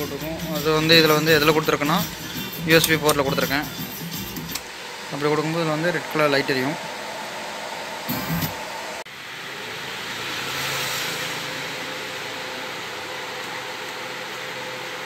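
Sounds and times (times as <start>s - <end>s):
amplifier hiss and hum: 0.0s - 15.0s.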